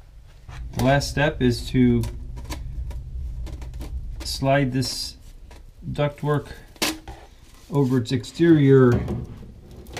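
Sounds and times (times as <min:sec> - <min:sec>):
low steady rumble: 0:00.0 - 0:09.9.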